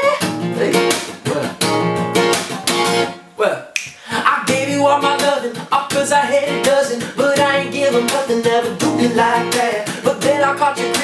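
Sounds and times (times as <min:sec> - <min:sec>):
acoustic guitar strumming: 0:00.0 - 0:03.4, 0:04.0 - 0:11.0
finger snaps: 0:03.8 - 0:04.0.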